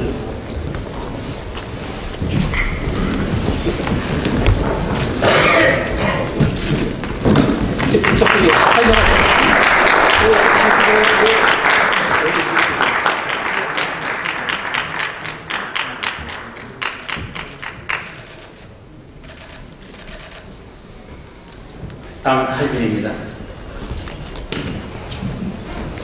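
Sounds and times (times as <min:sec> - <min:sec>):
audience applauding: 0:07.6 - 0:18.6.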